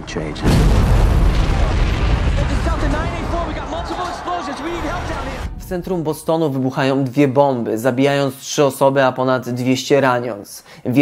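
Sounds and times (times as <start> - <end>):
bomb explosion boom: 0.3 - 6.0
man shouting: 2.5 - 5.6.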